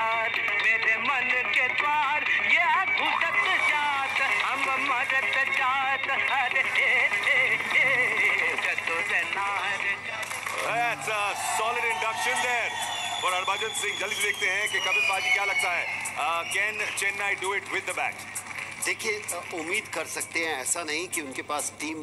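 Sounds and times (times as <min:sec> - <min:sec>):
music: 0:00.0 - 0:22.0
men singing and shouting a chant: 0:00.1 - 0:17.2.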